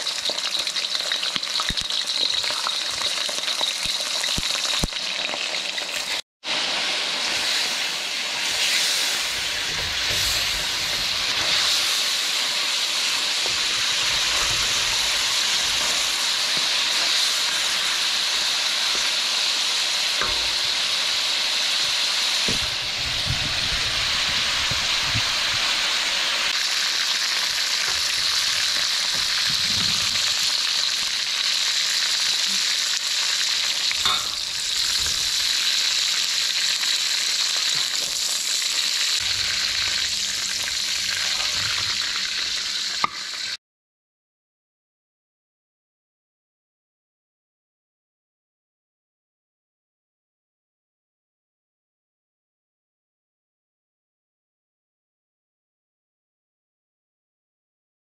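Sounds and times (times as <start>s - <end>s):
octopus sizzling in a wok: 0.0s - 43.6s
spatula scraping and knocking: 8.4s - 12.0s, 13.4s - 19.1s.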